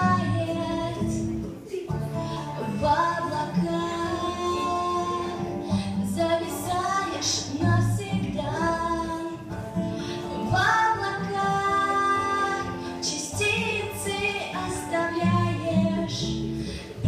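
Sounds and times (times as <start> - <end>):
woman singing a pop ballad: 0.0 - 9.6, 10.2 - 17.0
backing track: 0.0 - 17.0.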